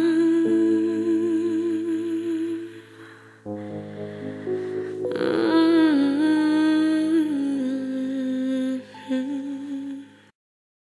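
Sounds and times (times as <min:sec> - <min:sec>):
person singing long note: 0:00.0 - 0:02.8, 0:03.4 - 0:10.0
sustained chords: 0:00.0 - 0:09.7.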